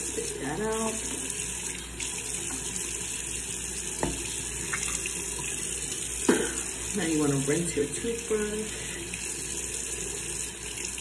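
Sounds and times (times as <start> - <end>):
tap running into a sink: 1.0 - 2.9, 3.9 - 6.8.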